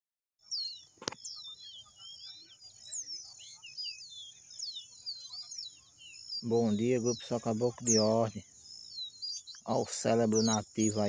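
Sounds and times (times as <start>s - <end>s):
bird whistled song: 0.4s - 11.0s
sharp click: 1.0s - 1.2s.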